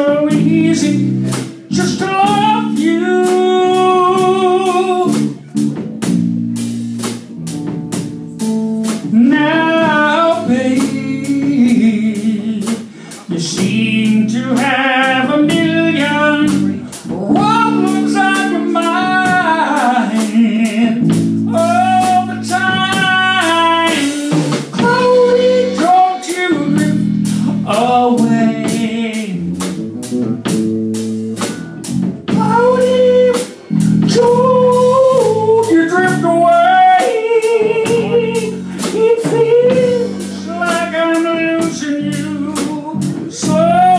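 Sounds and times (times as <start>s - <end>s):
man singing: 0.0s - 5.6s, 8.8s - 30.2s, 32.2s - 43.9s
drum kit steady beat: 0.0s - 43.9s
electric guitar chords: 0.0s - 43.9s.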